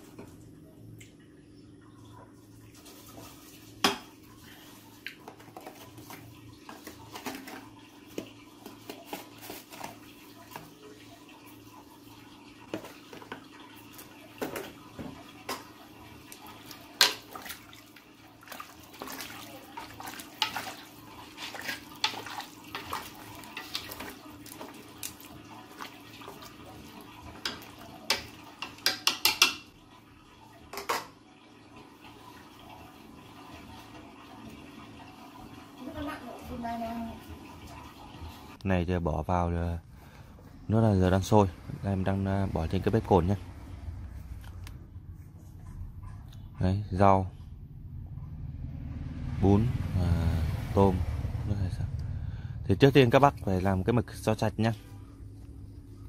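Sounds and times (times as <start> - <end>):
liquid sloshing: 2.3 - 31.0.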